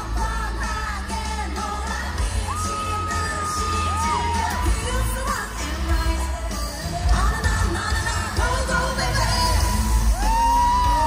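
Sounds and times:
female vocals singing: 0.0s - 11.0s
pop backing track with heavy bass: 0.0s - 11.0s.

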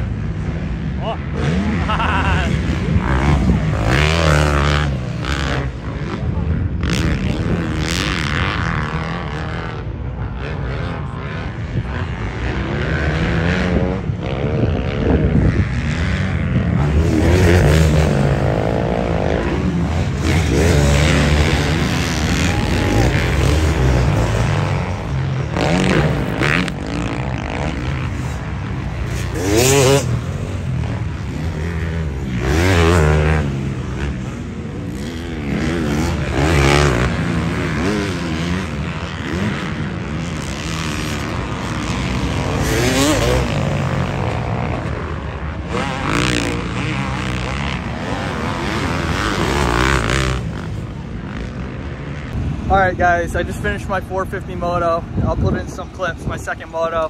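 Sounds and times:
motocross bike engines revving: 0.0s - 57.0s.

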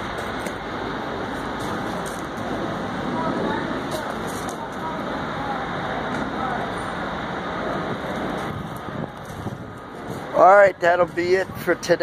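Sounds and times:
construction site machinery rumble: 0.0s - 12.0s.

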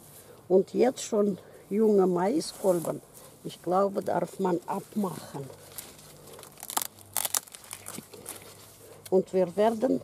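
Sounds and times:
corn husk crackling and tearing: 3.9s - 10.0s.

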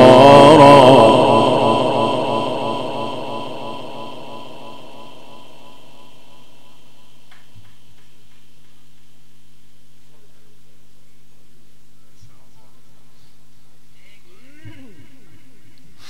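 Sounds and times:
sound system hum: 0.0s - 7.3s
recitation over loudspeaker with echo: 0.0s - 8.1s, 12.2s - 16.0s.

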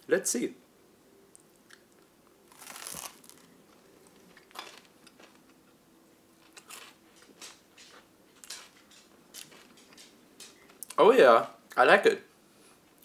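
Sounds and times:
biting into crunchy toast: 2.5s - 3.5s
chewing with quiet crunches: 6.4s - 11.0s.

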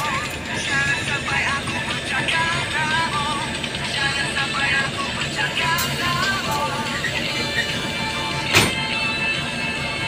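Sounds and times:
city bus running noise: 0.0s - 10.0s
radio music: 0.0s - 10.0s.

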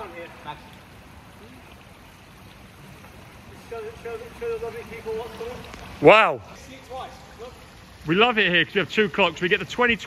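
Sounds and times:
water noise in pool hall: 0.0s - 10.0s.

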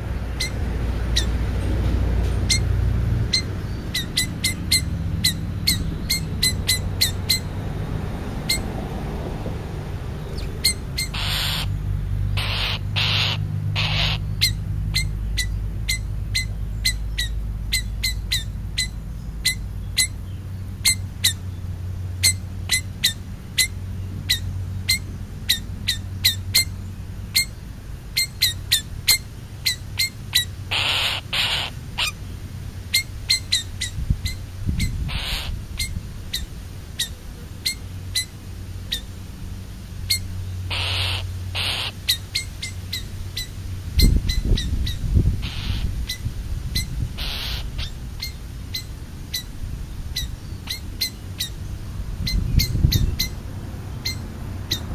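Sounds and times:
crow cawing: 11.1s - 11.7s, 12.4s - 14.2s, 40.7s - 42.0s.

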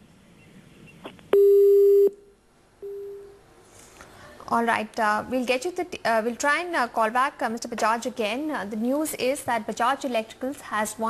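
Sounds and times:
telephone busy tone beeps: 1.4s - 2.2s, 2.8s - 3.4s.

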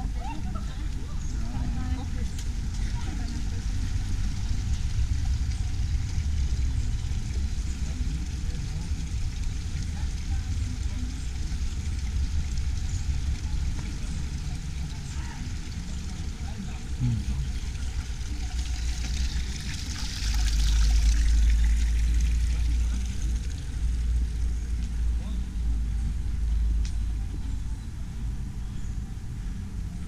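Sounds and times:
faint voices of people: 0.0s - 29.6s
low rumble: 0.0s - 30.0s.

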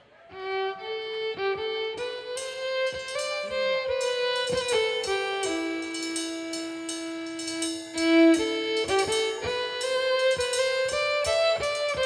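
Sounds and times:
fiddle: 0.0s - 12.0s
cymbal and hi-hat taps: 1.9s - 12.0s.

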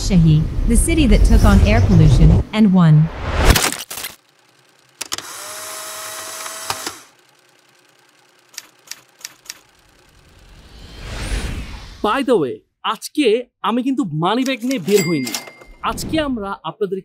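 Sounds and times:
whoosh: 10.5s - 12.1s.

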